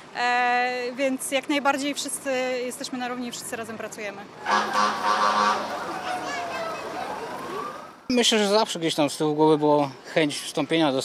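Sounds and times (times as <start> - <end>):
fire engine siren wailing: 4.4 - 8.1.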